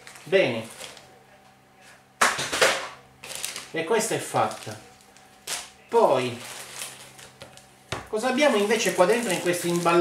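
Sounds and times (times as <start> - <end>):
paper and cardboard rustling: 8.2 - 10.0.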